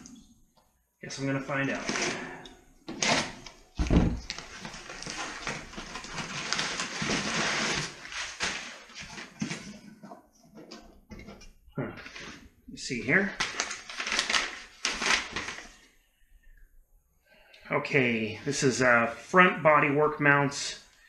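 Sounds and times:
rustling cardboard and paper: 1.3s - 12.5s, 13.1s - 15.9s.

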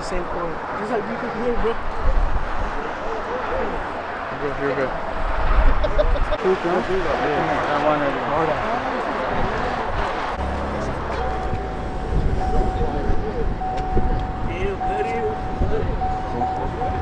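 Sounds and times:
cars accelerating: 0.0s - 17.0s
onlookers' voices: 0.0s - 17.0s
high engine whine: 6.4s - 17.0s.

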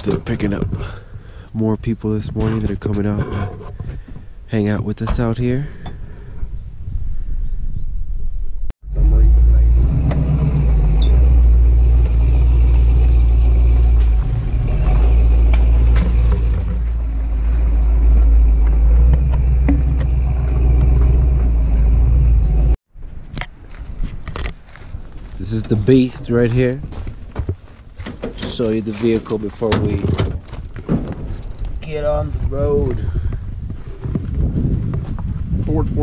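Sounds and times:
truck engine and tyres rumbling: 8.1s - 36.0s.

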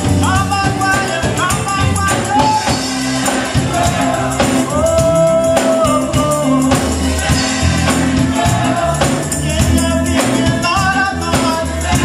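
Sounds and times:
gospel choir with live band: 0.0s - 12.0s.

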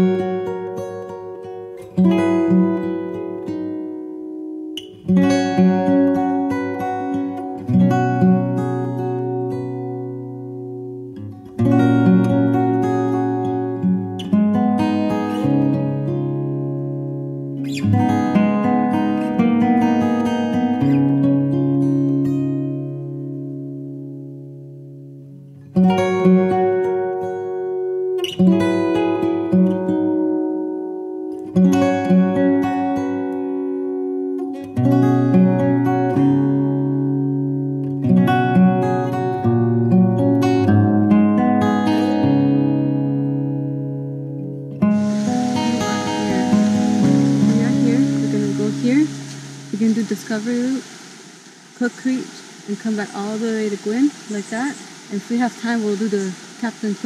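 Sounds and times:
acoustic guitar music: 0.0s - 57.0s
steady hiss: 44.7s - 57.0s.

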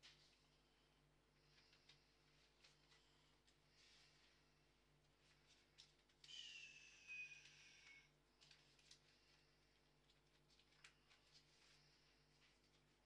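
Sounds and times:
faint low hum: 0.0s - 13.0s
faint whistle-like tone: 6.2s - 8.1s.

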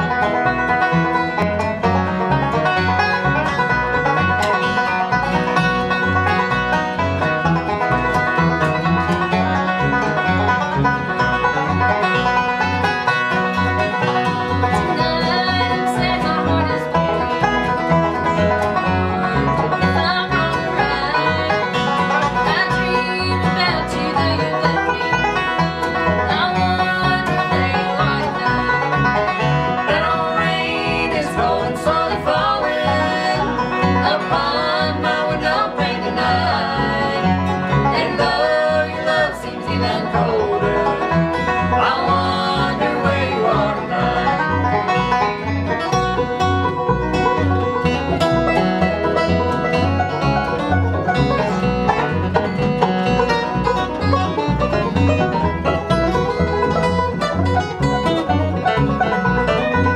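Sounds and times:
acoustic guitar: 0.0s - 59.9s
banjo: 0.0s - 59.9s
upright bass: 0.0s - 59.9s
woman singing lead vocal: 14.7s - 16.9s, 19.8s - 21.8s, 22.4s - 25.2s, 26.2s - 28.8s, 29.8s - 41.0s, 41.8s - 44.5s.

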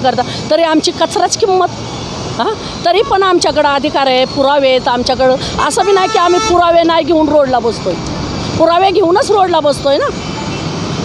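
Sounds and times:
woman speaking into a microphone: 0.0s - 1.7s, 2.4s - 8.0s, 8.6s - 10.2s
street traffic noise: 0.0s - 11.0s.

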